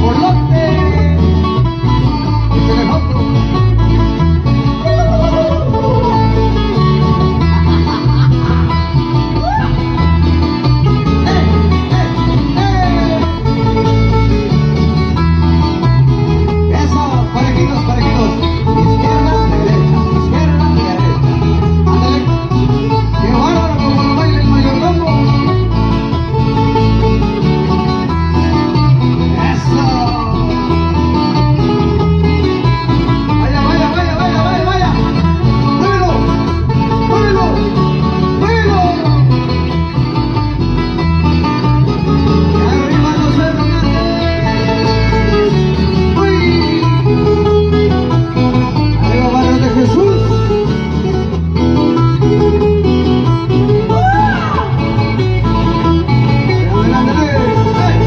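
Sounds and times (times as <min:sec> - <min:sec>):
live dance band music: 0:00.0 - 0:58.0.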